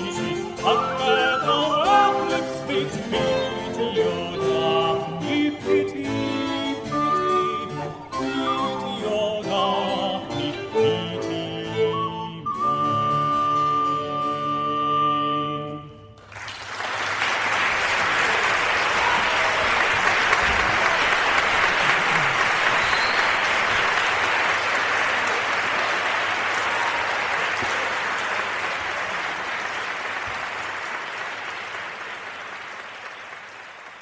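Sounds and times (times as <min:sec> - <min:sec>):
audience applauding: 0:16.2 - 0:34.0.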